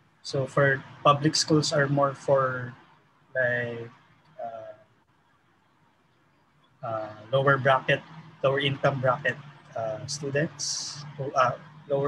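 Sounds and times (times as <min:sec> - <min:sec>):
man saying uh: 0:00.3 - 0:02.7, 0:03.4 - 0:04.7, 0:06.9 - 0:12.0.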